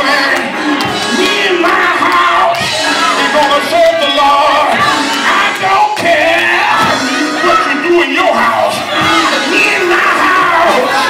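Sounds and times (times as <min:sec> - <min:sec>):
congregation calling out: 0:00.0 - 0:11.0
man singing through amplifier: 0:00.0 - 0:11.0
organ accompaniment: 0:00.0 - 0:11.0.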